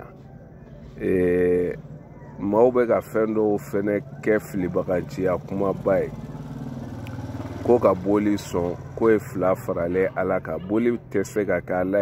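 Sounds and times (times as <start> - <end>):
vehicle engine hum: 0.0 - 12.0
man speaking: 1.0 - 6.2, 7.6 - 12.0.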